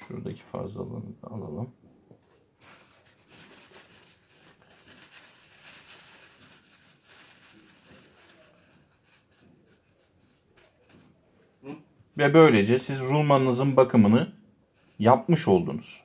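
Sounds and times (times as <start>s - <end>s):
paper towel rustling: 2.6s - 13.7s.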